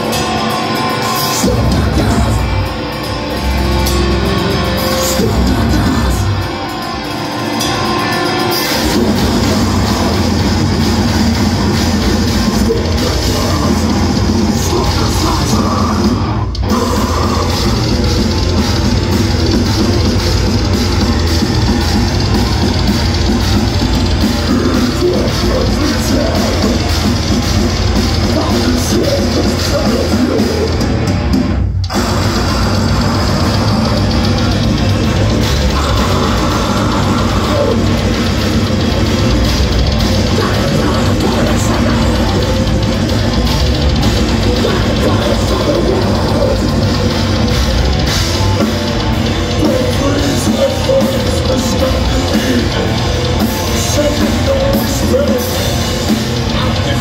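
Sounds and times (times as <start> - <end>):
grindcore band playing live: 0.0 - 57.0.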